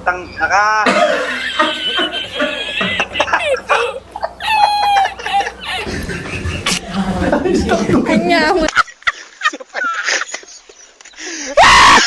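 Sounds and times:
person laughing faintly: 2.4 - 10.5
person screaming loudly: 11.6 - 12.0.

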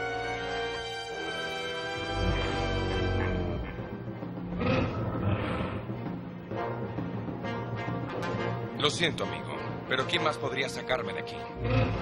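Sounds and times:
cartoon beast growling: 11.6 - 12.0.

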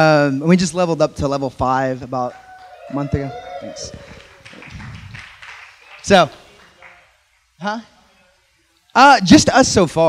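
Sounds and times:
hall room noise: 0.0 - 10.0.

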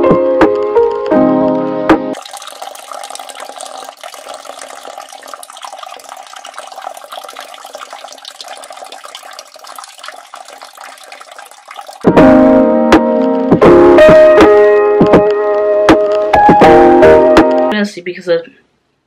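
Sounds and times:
water running: 2.2 - 12.2.

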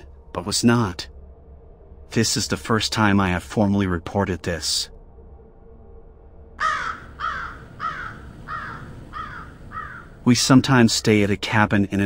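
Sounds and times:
faint low hum: 0.0 - 12.0
crow cawing: 6.6 - 10.2.

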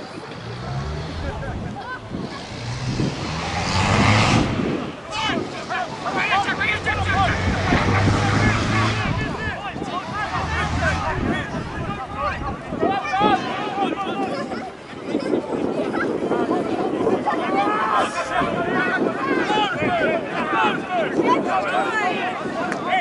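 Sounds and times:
spectators shouting: 0.0 - 23.0.

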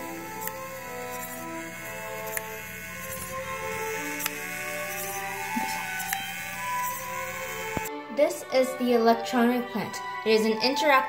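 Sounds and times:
small electric motor whirring: 0.0 - 7.9.

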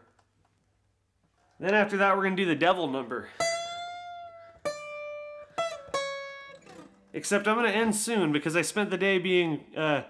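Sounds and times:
acoustic guitar notes plucked: 2.8 - 9.0.

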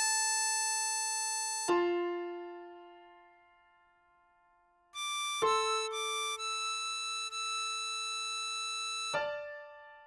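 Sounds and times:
synthesized harmonica note: 0.0 - 1.9, 5.0 - 9.8.

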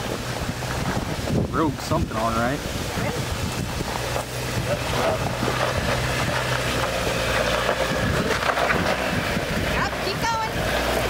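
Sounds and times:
vehicle engine running: 0.0 - 11.0
wind rushing on microphone: 0.0 - 11.0.

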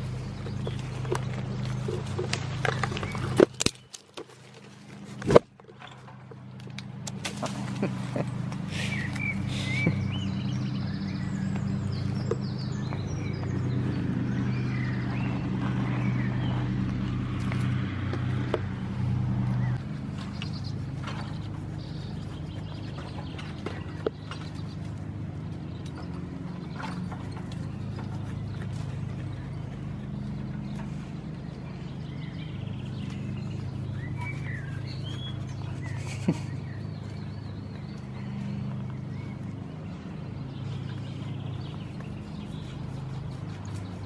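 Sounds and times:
low droning hum: 0.0 - 44.0
bird chirps: 8.7 - 16.8, 19.6 - 24.9, 25.6 - 44.0.

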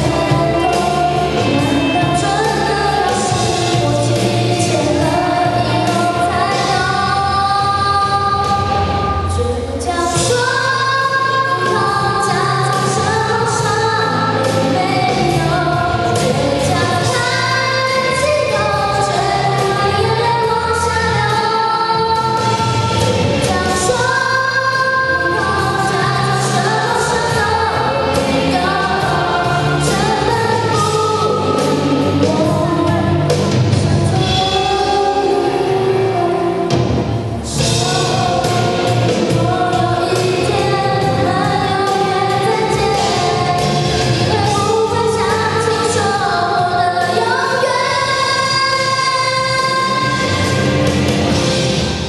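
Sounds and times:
girl singing into microphone: 0.0 - 51.0
karaoke backing track: 0.0 - 52.0.

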